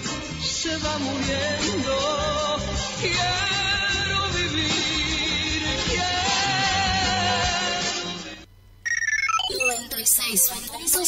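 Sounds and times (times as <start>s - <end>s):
music: 0.0s - 8.5s
electronic beeps stepping down: 8.8s - 11.0s.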